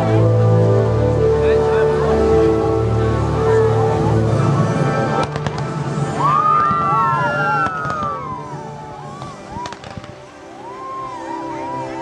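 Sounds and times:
fireworks launching and cracking: 5.1s - 10.4s.

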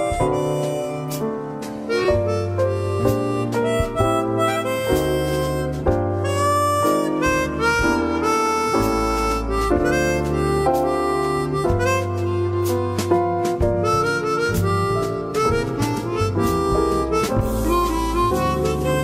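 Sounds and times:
slow jazz ballad: 0.0s - 19.0s.

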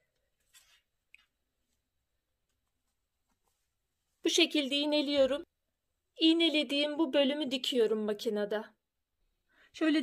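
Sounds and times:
fabric rustle: 0.2s - 4.3s.

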